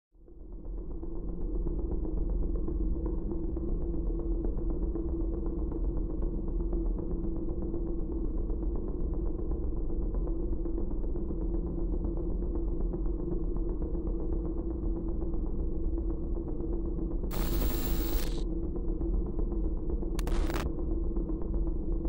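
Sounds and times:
held tone: 17.3s - 18.4s.

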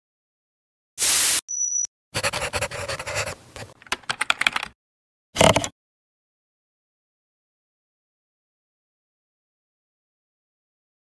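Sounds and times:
pencil scratching on paper: 2.2s - 3.8s.

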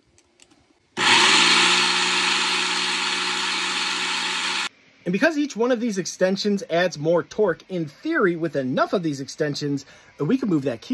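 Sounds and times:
blender motor spinning gearbox: 1.0s - 4.7s.

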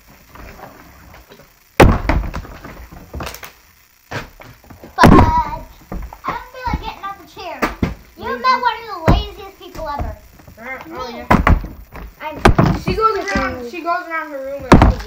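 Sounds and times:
plastic bottles thudding on table: 1.8s - 3.5s, 7.6s - 8.0s, 11.2s - 13.6s, 14.7s - 15.0s.

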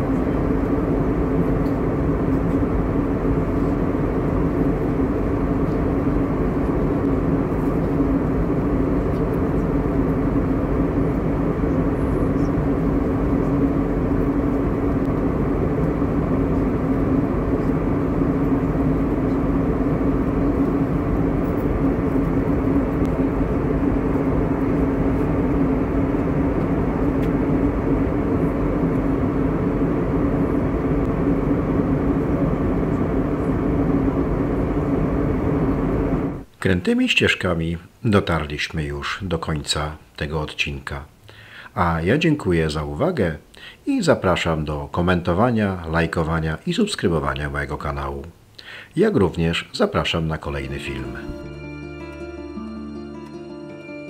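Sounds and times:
airliner engines and airflow rush: 0.0s - 36.5s, 50.4s - 51.5s
constant low hum: 0.0s - 53.5s.

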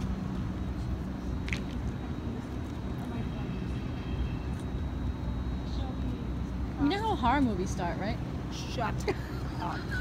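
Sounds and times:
city street rumble: 0.0s - 10.0s.

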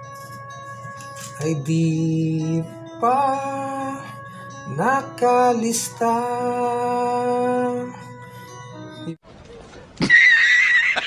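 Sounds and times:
horse whinny: 10.0s - 11.0s.

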